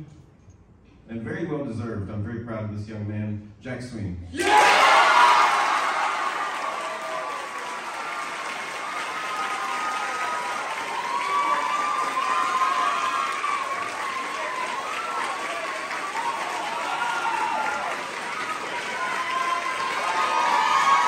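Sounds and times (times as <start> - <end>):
audience applauding: 4.4 - 21.0.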